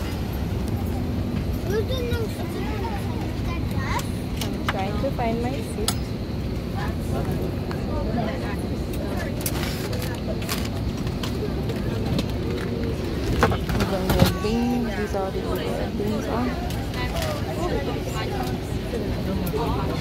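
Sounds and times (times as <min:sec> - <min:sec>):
passengers talking: 0:00.0 - 0:20.0.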